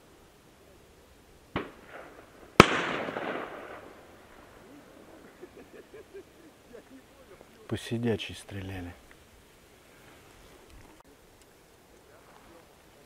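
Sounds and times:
distant shotgun shots with echo: 1.5s - 5.4s.

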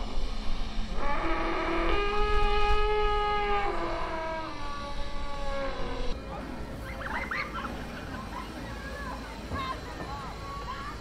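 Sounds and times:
mechanical elephant trumpeting: 1.0s - 6.1s.

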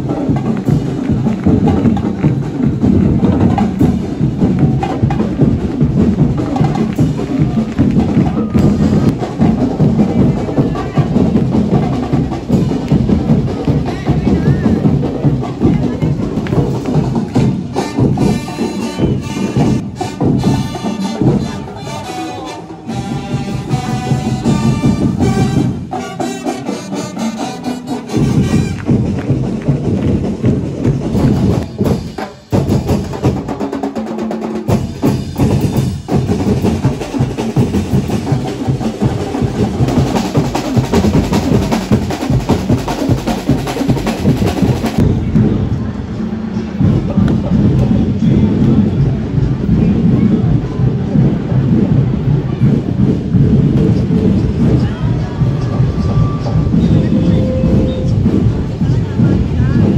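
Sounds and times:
drums and percussion: 0.0s - 59.9s
brass band melody: 16.4s - 30.0s.

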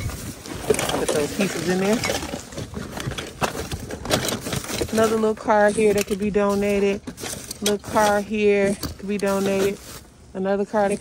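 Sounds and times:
plastic bags and cardboard rustling: 0.0s - 11.0s.

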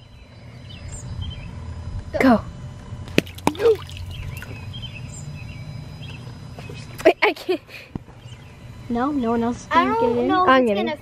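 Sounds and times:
splashes in shallow pool: 3.2s - 4.2s.

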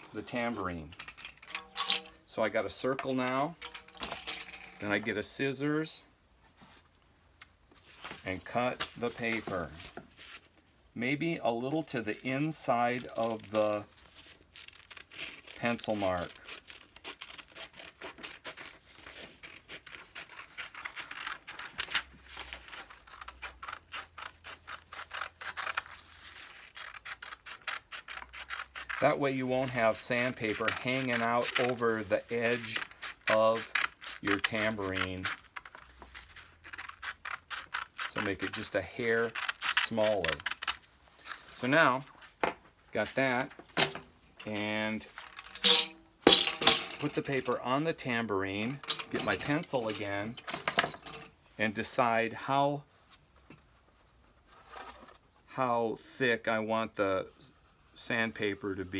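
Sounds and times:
scissors cutting paper: 14.6s - 40.8s.

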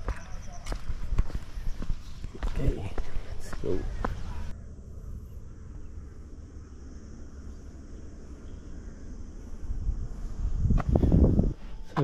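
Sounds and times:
footsteps on concrete: 0.0s - 4.6s.

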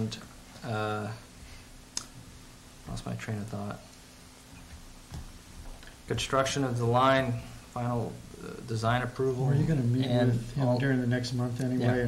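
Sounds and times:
man speaking: 0.0s - 1.2s, 2.9s - 3.9s, 6.1s - 12.0s.

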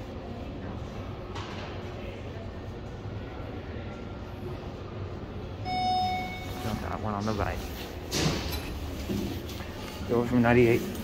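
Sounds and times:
steady background hum: 0.0s - 11.0s
elevator arrival chime: 5.6s - 7.0s.

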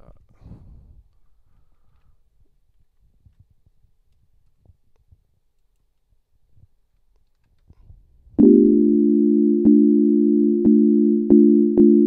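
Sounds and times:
synthesizer sustained low chord: 8.4s - 12.0s.

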